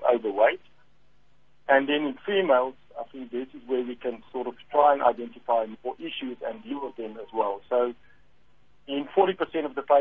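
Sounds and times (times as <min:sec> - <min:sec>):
man talking over telephone: 0:00.0 - 0:00.6, 0:01.7 - 0:08.0, 0:08.9 - 0:10.0.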